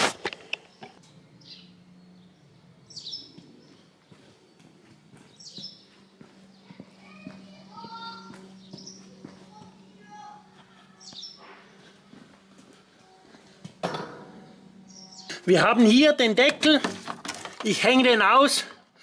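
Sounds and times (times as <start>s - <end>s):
steady low hum: 0.1s - 17.6s.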